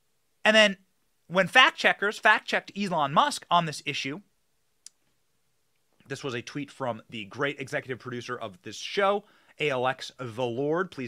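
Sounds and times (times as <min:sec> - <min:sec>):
man speaking: 0:00.4 - 0:04.3, 0:06.0 - 0:11.0.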